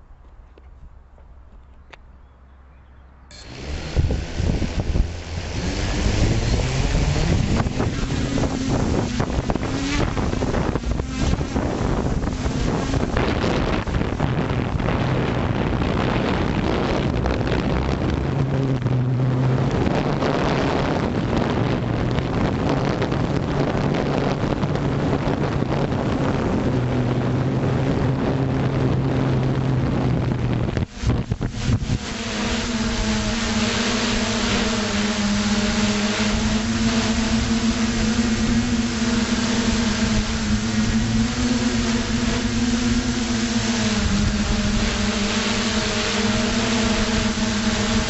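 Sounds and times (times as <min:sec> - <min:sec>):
drone motors humming: 0:01.5 - 0:48.0
wind on microphone: 0:03.3 - 0:48.0.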